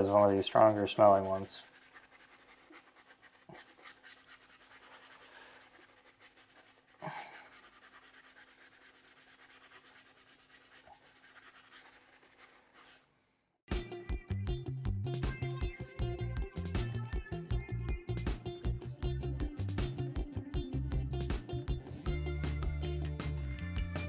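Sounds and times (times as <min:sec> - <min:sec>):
brush scrubbing a wheel: 0:00.0 - 0:13.1
music: 0:13.7 - 0:24.0.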